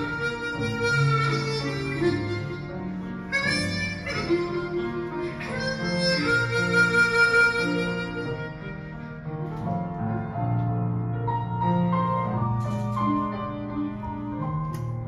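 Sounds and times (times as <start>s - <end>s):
harmonica melody: 0.0s - 9.5s
piano accompaniment: 0.0s - 15.0s.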